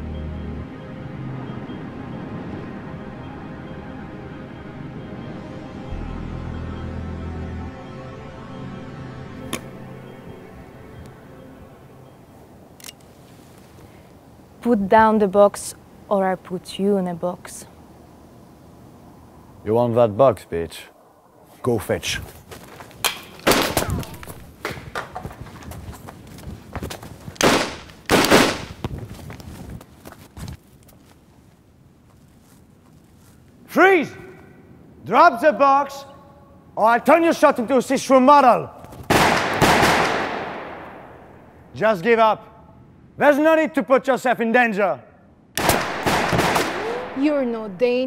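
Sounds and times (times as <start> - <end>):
quick footsteps: 22.2 - 33.5
pistol shots: 23.4 - 24.1, 27.4 - 28.8, 39.1 - 41.1, 45.6 - 47.0.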